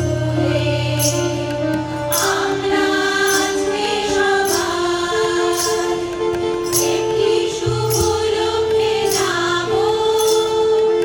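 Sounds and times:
harmonium: 0.0s - 11.0s
women's choir singing: 0.0s - 11.0s.

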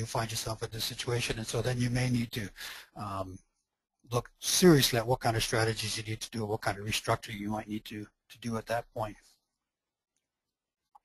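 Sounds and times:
man speaking: 0.0s - 3.4s, 4.1s - 9.3s.

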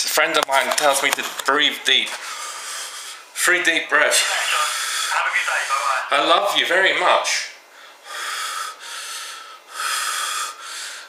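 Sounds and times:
man breathing deeply: 2.2s - 3.3s, 7.7s - 11.0s.

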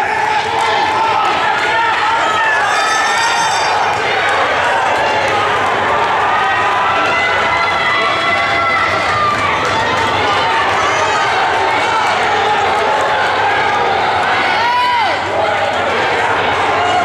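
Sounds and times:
spectators shouting and cheering: 0.0s - 17.0s.

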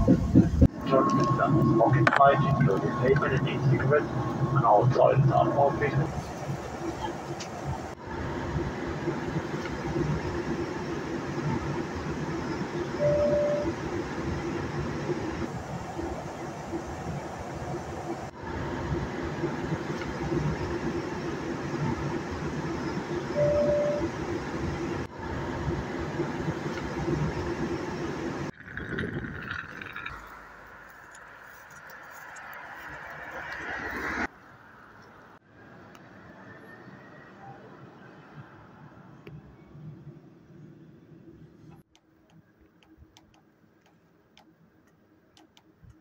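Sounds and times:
jet cabin engine drone: 0.0s - 29.1s
brief beeps: 13.0s - 13.7s, 23.3s - 24.1s.

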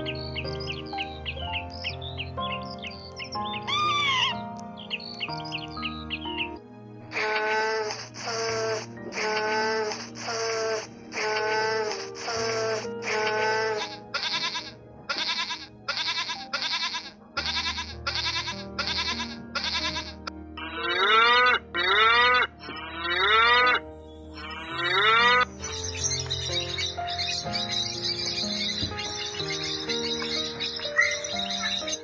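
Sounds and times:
high bird chatter: 0.0s - 6.6s, 24.4s - 32.0s
background music with held notes: 0.0s - 32.0s
calf bawling: 3.6s - 4.4s, 13.2s - 23.8s, 29.6s - 32.0s
short repeated animal calls: 13.8s - 23.8s.

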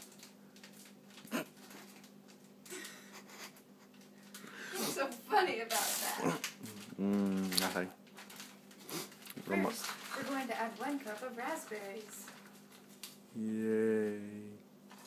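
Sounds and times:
faint steady hum: 0.0s - 15.0s
held pitched vocal sound: 6.2s - 7.6s, 13.3s - 14.6s
human voices: 6.2s - 7.8s, 13.3s - 14.6s.

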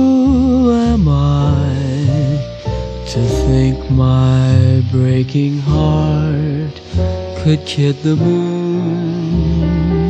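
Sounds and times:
man singing jazz with vibrato: 0.0s - 10.0s
piano and bass accompaniment: 0.0s - 10.0s.

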